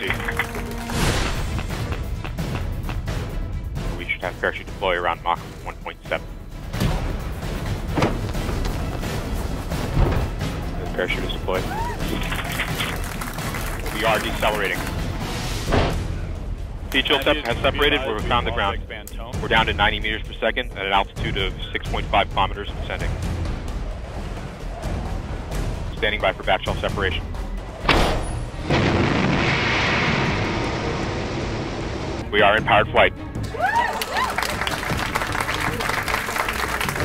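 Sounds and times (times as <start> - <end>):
crowd applauding and cheering: 0.0 - 3.0, 11.4 - 15.3, 33.4 - 37.0.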